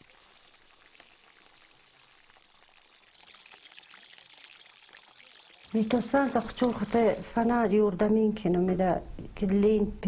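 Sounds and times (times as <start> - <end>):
small crackles: 0.0 - 7.4
food sizzling in oil: 0.0 - 7.6.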